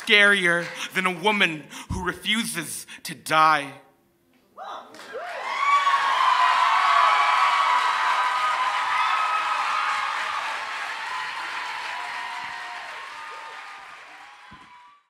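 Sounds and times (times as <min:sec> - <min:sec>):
audience applauding and cheering: 0:05.0 - 0:15.0.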